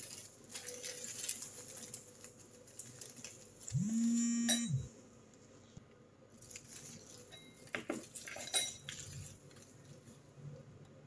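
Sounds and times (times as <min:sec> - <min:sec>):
foil wrapper crinkling: 0:00.0 - 0:03.7, 0:06.3 - 0:10.2.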